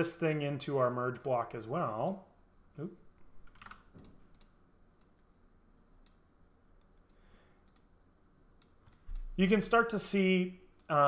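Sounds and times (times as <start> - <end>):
computer mouse clicks: 3.5 - 5.3, 6.8 - 7.9.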